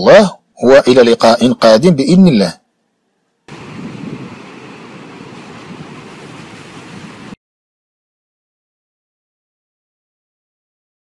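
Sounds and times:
steady rushing noise: 3.5s - 7.4s.

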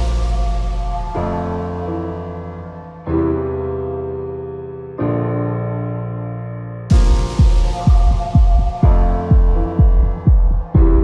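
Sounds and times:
cymbal crash: 0.0s - 1.8s
deep bass drum hits: 6.9s - 11.0s.

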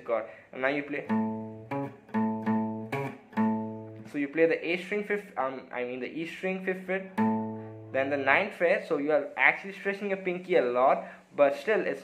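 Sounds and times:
acoustic guitar bass notes: 0.8s - 4.2s, 6.5s - 8.6s.

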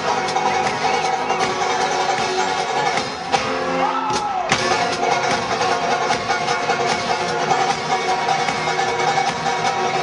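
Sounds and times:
banjo picked in fast rolls: 0.0s - 10.0s.

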